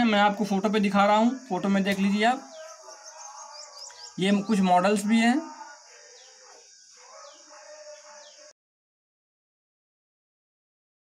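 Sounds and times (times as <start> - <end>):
bird chirping: 0.0 - 8.5.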